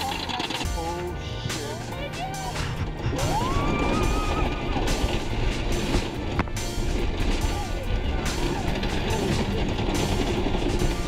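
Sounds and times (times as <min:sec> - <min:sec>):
roller coaster rumbling and clattering: 0:00.0 - 0:11.0.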